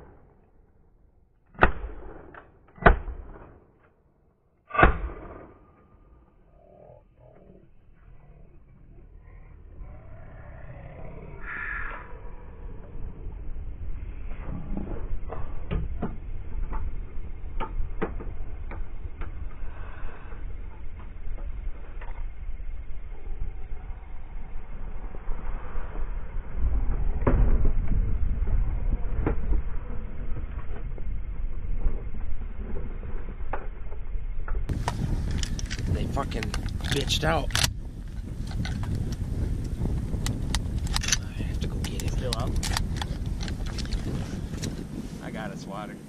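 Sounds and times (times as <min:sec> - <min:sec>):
wind rumbling on microphone: 0:04.8 - 0:46.0.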